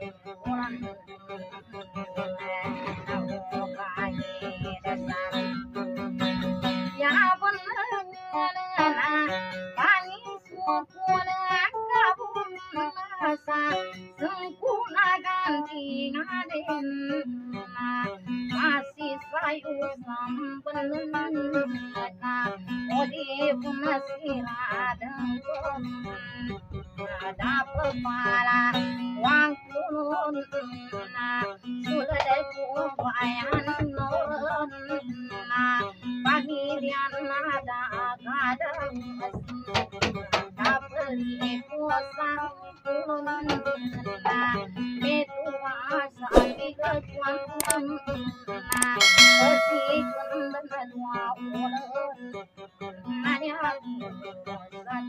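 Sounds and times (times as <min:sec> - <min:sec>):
acoustic guitar strumming: 0:00.0 - 0:13.0, 0:48.2 - 0:51.5
strummed acoustic guitar: 0:00.0 - 0:55.0
woman singing: 0:00.0 - 0:55.0
bright bell-like ding: 0:48.8 - 0:50.6.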